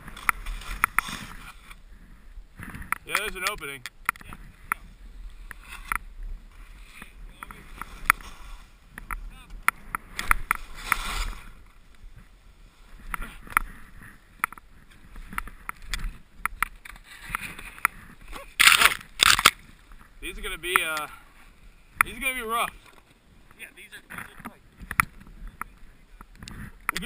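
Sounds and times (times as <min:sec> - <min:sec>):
branches brushing against camera: 0:00.0 - 0:01.8, 0:02.8 - 0:27.0
snow swishing under rider: 0:00.0 - 0:02.6, 0:04.5 - 0:09.0, 0:10.0 - 0:16.2.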